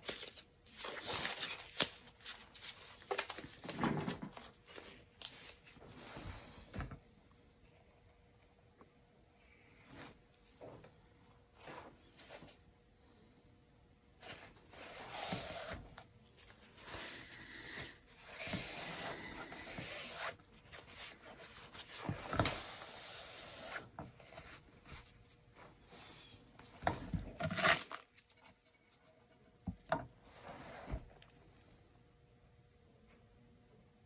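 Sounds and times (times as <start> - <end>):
board rubbing and scraping: 18.3 - 20.4.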